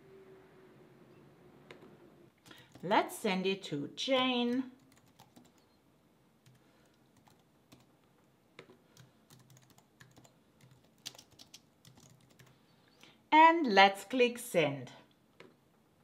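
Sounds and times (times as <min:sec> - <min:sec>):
typing on computer keyboard: 0:04.2 - 0:05.7, 0:06.4 - 0:07.9, 0:08.6 - 0:12.5.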